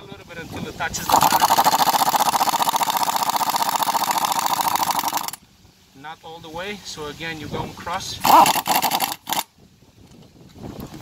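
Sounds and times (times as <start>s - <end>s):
impact wrench running: 1.0s - 5.4s, 8.2s - 9.5s.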